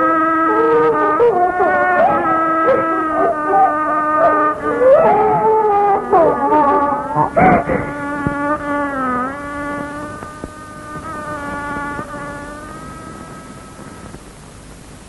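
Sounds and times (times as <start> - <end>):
buzzy held note: 0.0 - 14.2.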